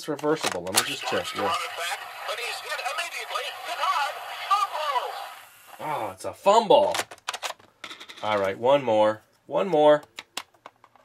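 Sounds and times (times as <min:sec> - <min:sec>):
tinny recorded announcer voice: 0:00.8 - 0:06.8.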